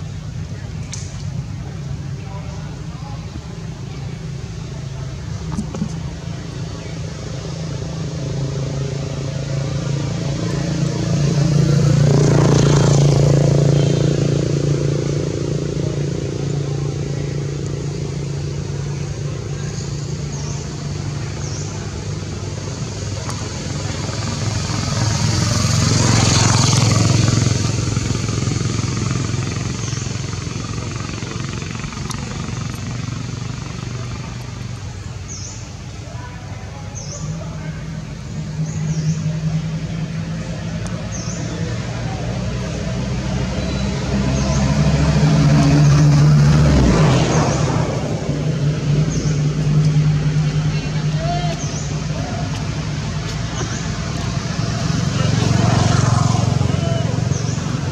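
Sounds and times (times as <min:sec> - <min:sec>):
steady engine hum: 0:00.0 - 0:57.9
vehicle passing close by: 0:03.9 - 0:35.5, 0:37.0 - 0:57.9.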